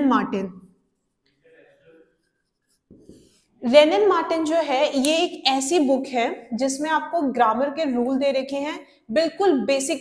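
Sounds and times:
marker writing on whiteboard: 0:00.6 - 0:05.1.

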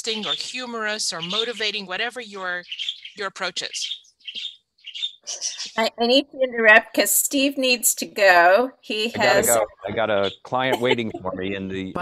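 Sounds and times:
woman speaking: 0:00.0 - 0:02.6, 0:03.2 - 0:03.9, 0:05.3 - 0:12.0
high bird chirps: 0:00.0 - 0:05.8.

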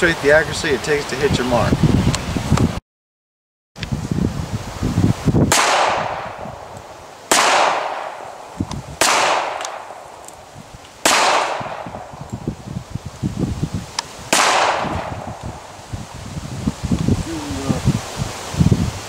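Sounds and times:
pistol shots: 0:05.5 - 0:06.4, 0:07.3 - 0:08.4, 0:09.0 - 0:10.0, 0:11.0 - 0:12.1, 0:14.3 - 0:15.4.

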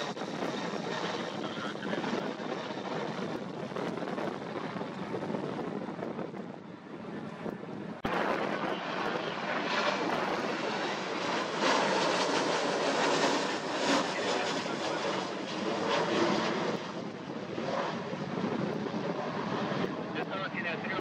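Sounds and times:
jet engine roar overhead: 0:00.0 - 0:21.0.

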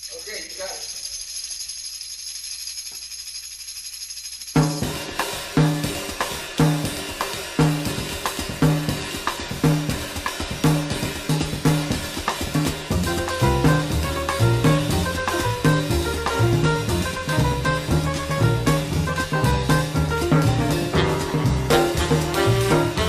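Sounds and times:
cymbal and hi-hat: 0:00.0 - 0:23.0
jazz drum kit: 0:04.6 - 0:23.0
bass playing repeating figure: 0:10.7 - 0:23.0.

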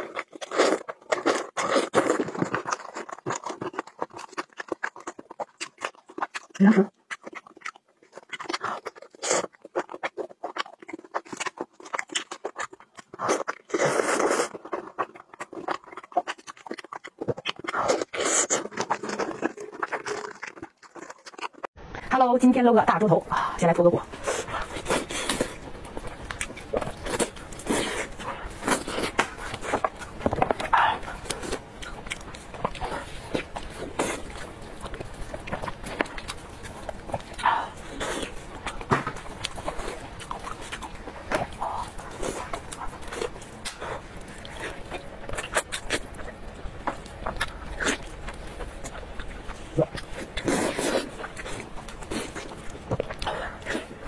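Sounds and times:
wet chewing and lip smacking: 0:00.0 - 0:21.7, 0:24.0 - 0:54.0.

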